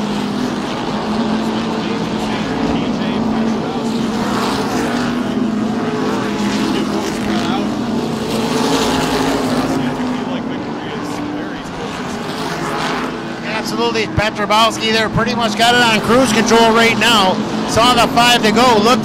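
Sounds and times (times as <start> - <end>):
race car engines droning: 0.0 - 19.0.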